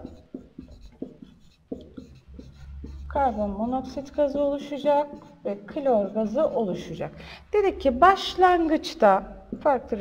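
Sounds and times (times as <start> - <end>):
stylus tapping and scratching: 0.0 - 7.0, 9.4 - 10.0.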